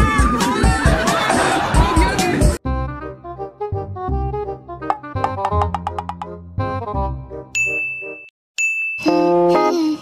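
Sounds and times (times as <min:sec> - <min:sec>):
plucked background music: 0:02.6 - 0:08.2
bright ding sound effect: 0:07.6 - 0:09.3.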